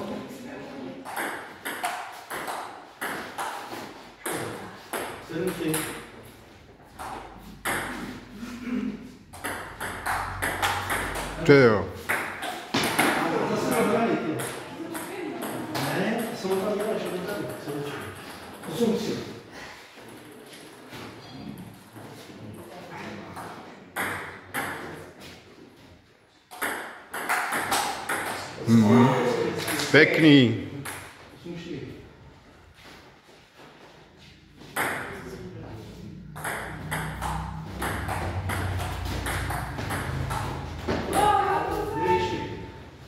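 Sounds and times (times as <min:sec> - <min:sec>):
ping pong ball hits: 0:01.0 - 0:03.6, 0:07.0 - 0:08.1, 0:09.3 - 0:11.4, 0:12.0 - 0:17.0, 0:26.5 - 0:28.5, 0:34.8 - 0:35.2, 0:36.3 - 0:41.3
person calling out: 0:28.7 - 0:29.5.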